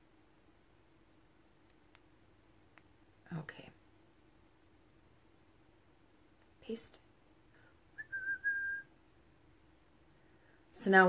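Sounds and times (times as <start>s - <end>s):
person whistling: 8.0s - 8.9s.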